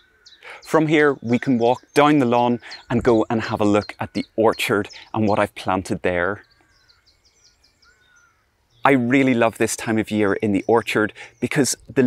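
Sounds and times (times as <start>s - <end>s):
birdsong: 0.0s - 12.0s
man's voice: 0.5s - 6.4s, 8.9s - 12.0s.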